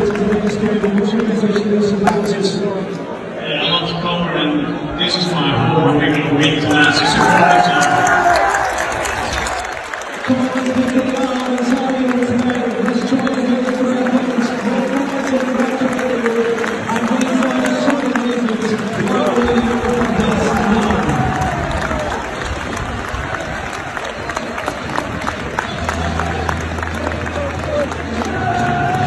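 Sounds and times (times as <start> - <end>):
crowd clapping: 0.0 - 2.5, 6.0 - 29.0
crowd noise: 0.0 - 29.0
stadium crowd singing: 25.7 - 29.0.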